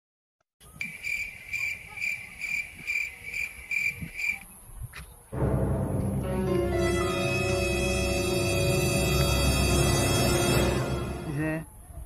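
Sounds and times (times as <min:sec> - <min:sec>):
cricket chirping: 0:00.7 - 0:04.6
ominous low music drone: 0:05.4 - 0:11.4.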